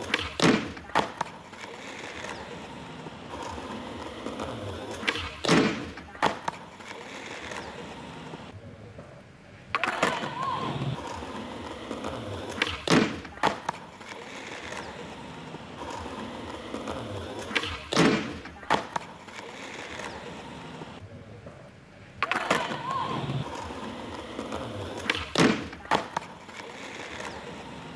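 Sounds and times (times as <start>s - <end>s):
skateboard landing clack: 0.0s - 2.4s, 3.4s - 7.7s, 9.0s - 14.9s, 15.8s - 20.2s, 21.4s - 27.6s
skateboard wheels rolling on concrete: 0.0s - 27.9s.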